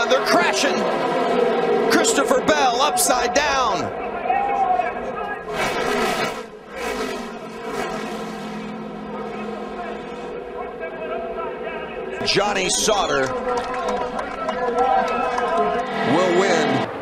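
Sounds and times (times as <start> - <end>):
race truck engines: 0.0 - 17.0
trucks crashing rushing noise: 5.4 - 10.6.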